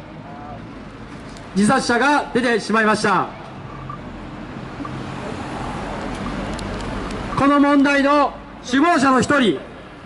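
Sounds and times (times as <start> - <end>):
car driving past: 3.8 - 7.3.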